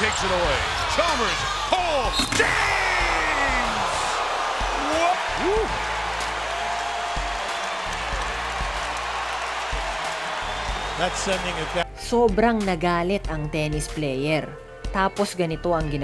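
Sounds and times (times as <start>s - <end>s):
crowd cheering: 0.0s - 11.8s.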